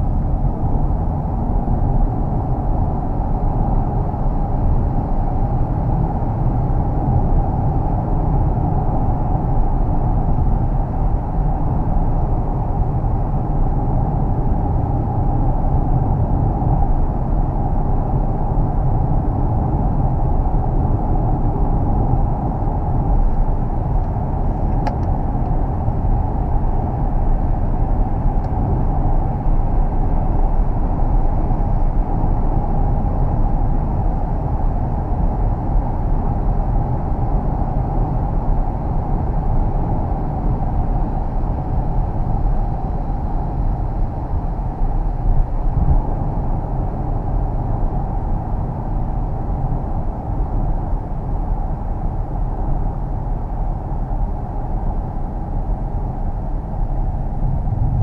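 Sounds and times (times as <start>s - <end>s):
low tyre rumble: 0.0s - 58.0s
road and wind noise inside car: 0.0s - 58.0s.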